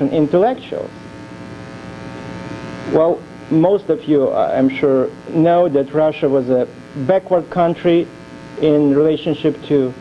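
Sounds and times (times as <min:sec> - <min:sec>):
man speaking: 0:00.0 - 0:01.0, 0:02.9 - 0:10.0
electrical hum: 0:00.0 - 0:10.0.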